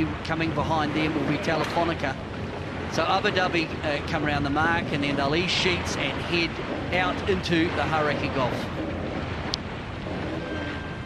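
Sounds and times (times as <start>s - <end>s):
sea noise: 0.0s - 11.0s.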